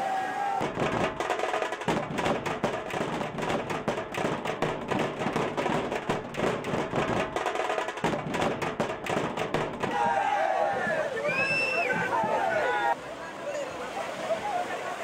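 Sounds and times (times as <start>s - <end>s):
drum band playing fast rhythm: 0.6s - 12.4s.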